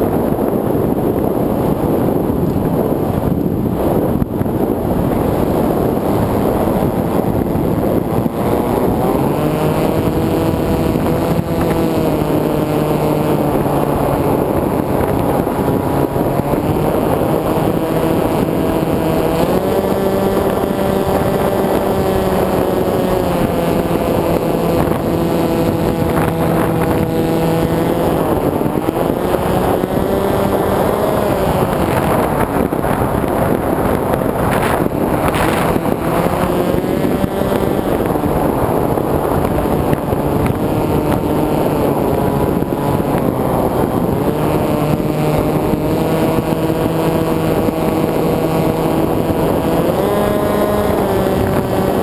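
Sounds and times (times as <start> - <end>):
motor and propeller whine: 0.0 - 52.0
wind rush on microphone: 0.0 - 52.0.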